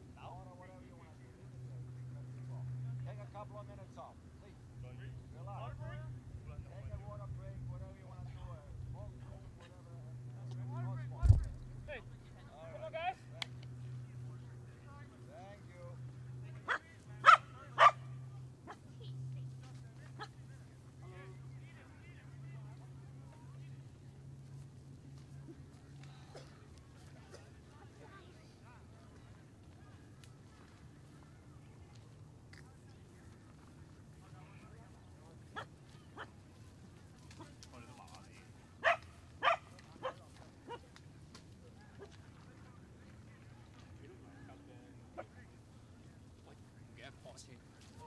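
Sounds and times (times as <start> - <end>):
dog barking: 16.7 - 18.0, 38.8 - 40.8.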